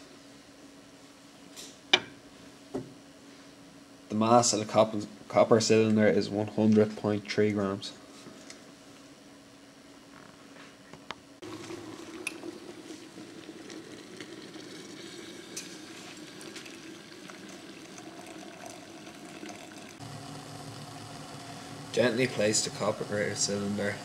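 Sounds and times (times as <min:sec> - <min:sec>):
water pouring into glass: 0:11.4 - 0:20.0.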